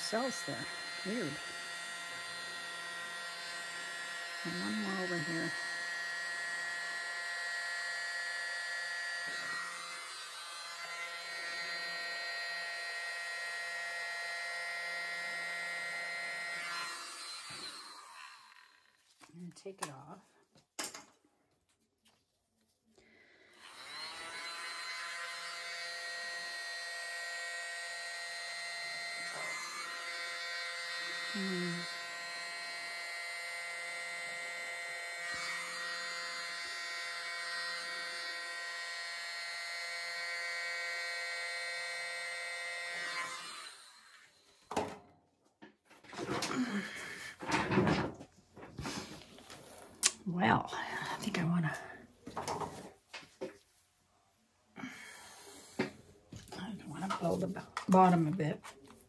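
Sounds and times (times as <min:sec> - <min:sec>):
electric blower whining: 0:00.0 - 0:19.1, 0:23.4 - 0:45.0, 0:46.1 - 0:48.0, 0:48.7 - 0:50.1
knocks and handling noises: 0:52.2 - 0:53.7.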